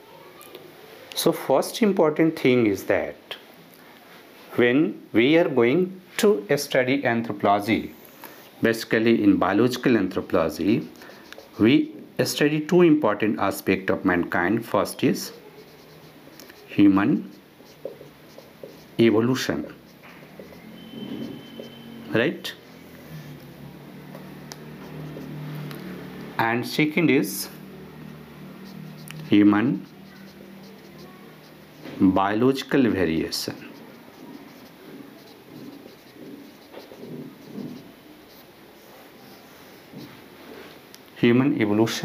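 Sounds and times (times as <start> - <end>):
marker pen writing on whiteboard: 6.5 - 40.6.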